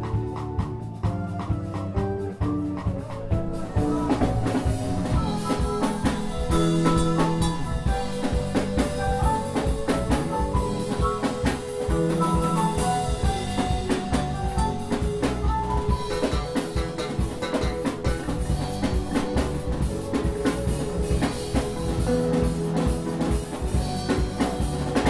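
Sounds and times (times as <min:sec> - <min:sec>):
drum kit groove: 0:00.0 - 0:25.0
electric bass melodic line: 0:00.0 - 0:25.0.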